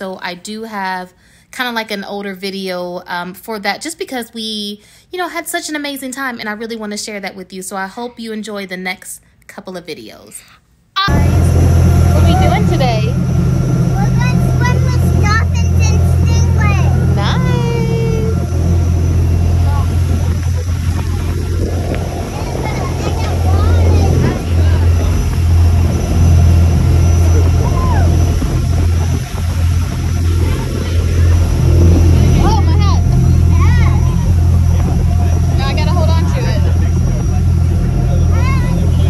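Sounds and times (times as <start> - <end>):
boat engine droning: 11.1 - 39.0
water rushing: 11.1 - 39.0
wind rushing: 11.1 - 39.0.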